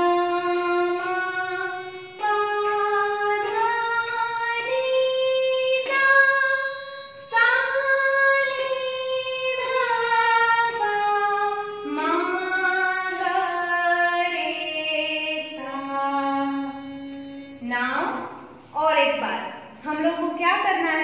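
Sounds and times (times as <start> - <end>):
woman singing descending scale: 0.0 - 18.2.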